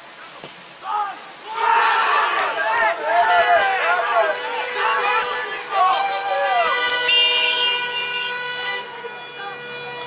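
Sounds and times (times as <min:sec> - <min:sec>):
car horns honking: 0:03.0 - 0:10.0.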